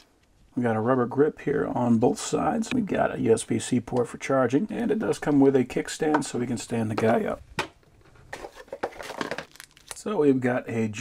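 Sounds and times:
plastic bag crinkling: 8.0s - 10.1s.

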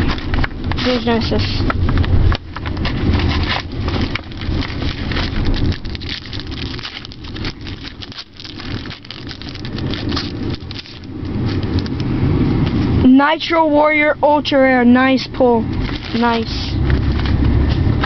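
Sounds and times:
plastic bag and cards rustling: 0.0s - 12.0s, 15.7s - 18.0s
low rumble: 0.0s - 18.0s
foil wrapper crinkling and tearing: 2.1s - 12.1s, 15.7s - 18.0s.

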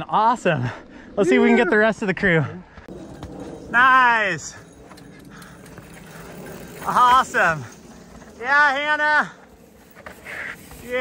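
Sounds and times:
bike tyre rumble: 2.8s - 11.0s.

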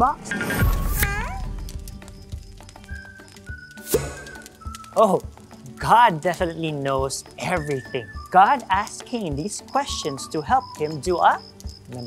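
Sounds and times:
soft background music: 0.0s - 12.0s
squeaky cartoon voice call: 0.9s - 1.5s.

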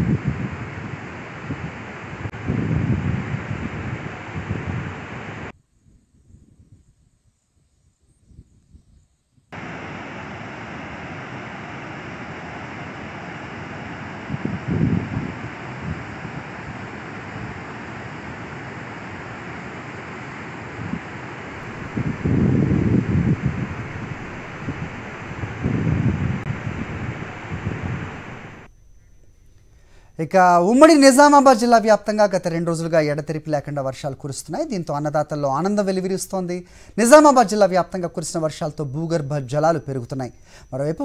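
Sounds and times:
wind buffeting microphone: 0.0s - 7.0s, 13.5s - 18.5s, 20.8s - 28.7s.

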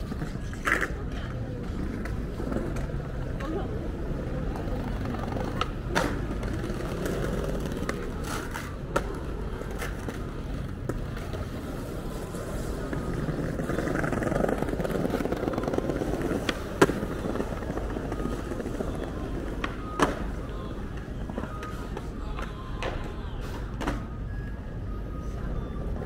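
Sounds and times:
busy street low rumble: 0.0s - 26.0s.

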